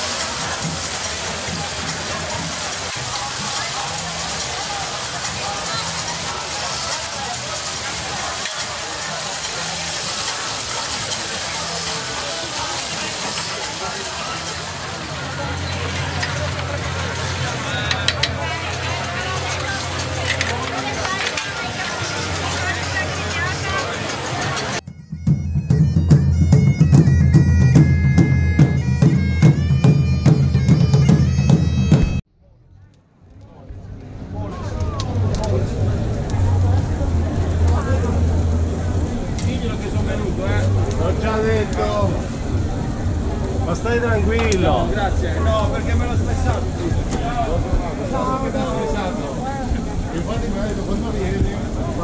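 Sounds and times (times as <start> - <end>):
outdoor crowd noise: 0.0 - 52.0
bagpipe music: 24.8 - 32.2.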